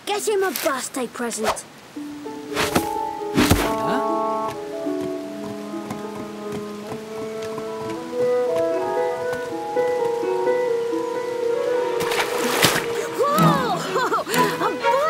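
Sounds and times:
cartoon background music: 2.0s - 15.0s.

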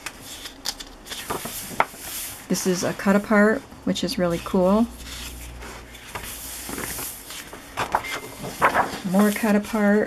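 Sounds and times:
paper pages rustling and sliding: 0.1s - 2.4s, 5.0s - 10.0s
soft brushes of paper: 1.5s - 7.6s, 9.0s - 10.0s.

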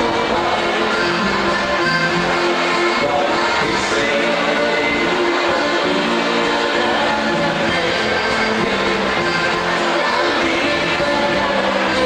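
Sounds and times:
live band playing sustained chords: 0.0s - 12.0s.

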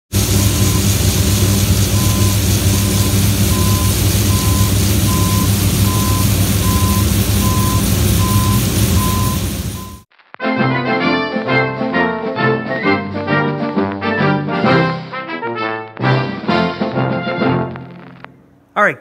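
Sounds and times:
grain pouring into trailer: 0.1s - 10.0s
machinery engine drone: 0.1s - 10.0s
electronic warning beeps: 0.5s - 0.9s, 1.9s - 10.1s.

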